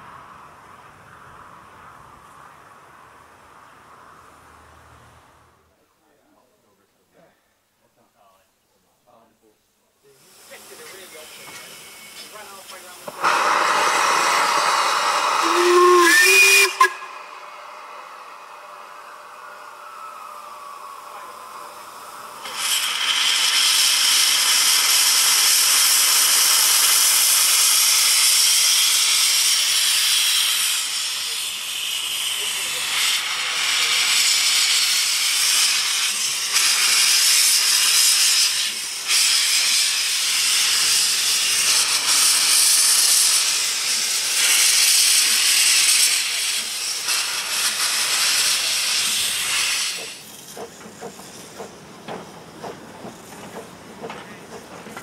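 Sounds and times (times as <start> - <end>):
steam locomotive hissing steam: 0.0 - 5.7, 10.0 - 55.0
steam whistle: 13.2 - 18.0.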